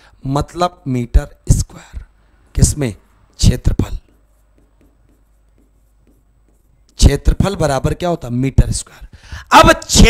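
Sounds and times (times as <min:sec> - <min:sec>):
chalk writing on chalkboard: 0:03.0 - 0:08.0.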